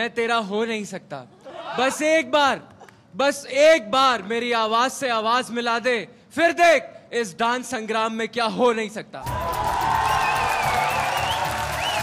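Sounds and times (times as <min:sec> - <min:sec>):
audience applauding: 0:09.2 - 0:12.0.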